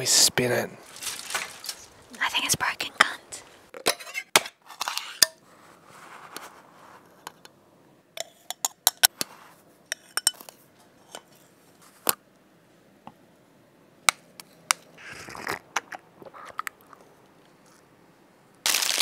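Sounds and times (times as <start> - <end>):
rustle: 0.4 - 2.5.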